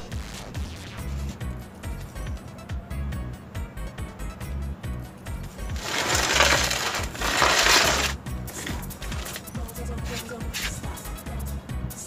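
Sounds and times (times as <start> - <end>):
cement mix crunching and scraping: 5.7 - 10.8.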